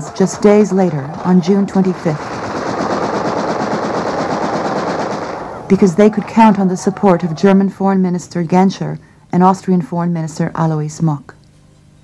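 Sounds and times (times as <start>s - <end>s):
rapid crackle of small blasts: 0.0s - 7.0s.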